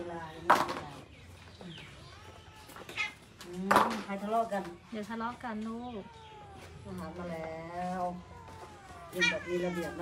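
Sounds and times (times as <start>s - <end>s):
cats meowing: 1.6s - 4.6s, 5.2s - 10.0s.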